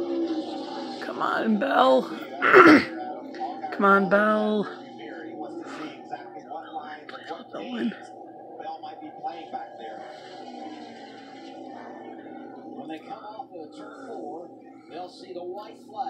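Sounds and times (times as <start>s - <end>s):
commentator talking: 1.0s - 4.8s, 7.0s - 8.0s.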